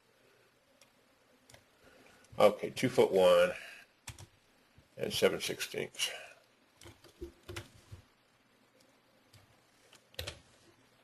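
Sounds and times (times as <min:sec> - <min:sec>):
computer keyboard keystrokes: 0:04.0 - 0:04.3, 0:06.8 - 0:07.8, 0:09.3 - 0:10.4.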